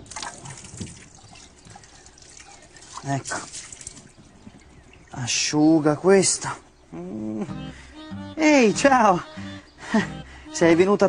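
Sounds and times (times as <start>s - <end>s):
water splashing in a sink: 0.0s - 4.2s.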